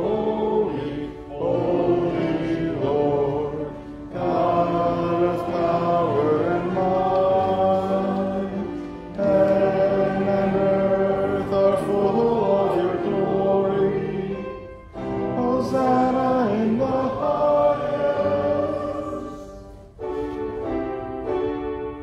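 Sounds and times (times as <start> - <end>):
voices singing a hymn: 0.0 - 22.0
singers breathing: 3.7 - 4.1.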